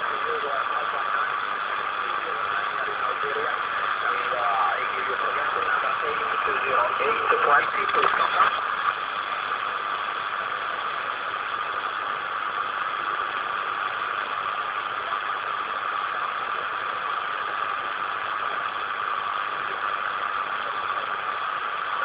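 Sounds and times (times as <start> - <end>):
radio static hiss: 0.0 - 22.0.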